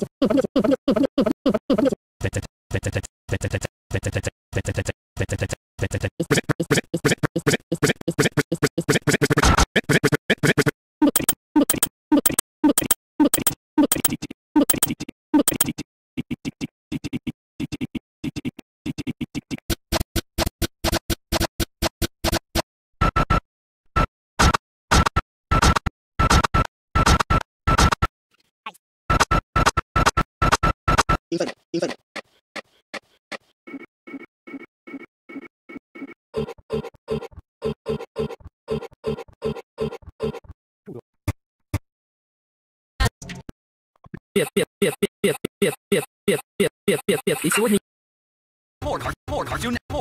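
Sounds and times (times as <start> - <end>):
stutter-looped vocal snippet: 0.0 - 19.7, 31.3 - 32.0, 44.0 - 47.8.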